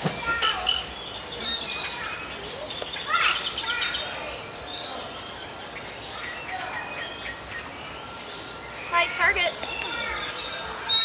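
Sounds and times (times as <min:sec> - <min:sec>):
small birds chirping: 0:00.2 - 0:11.0.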